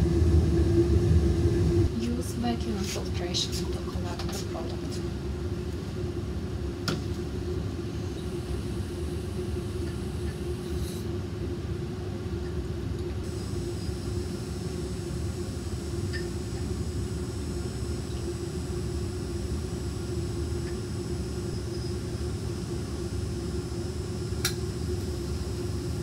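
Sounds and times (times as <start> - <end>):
ventilation hum: 0.0 - 26.0
light click: 24.4 - 24.6.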